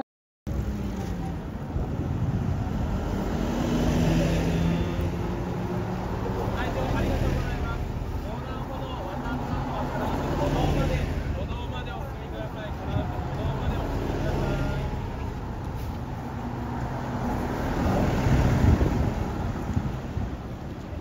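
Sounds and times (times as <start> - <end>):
bus engines running: 0.5 - 21.0
road noise: 0.5 - 21.0
faint voices: 3.8 - 16.6.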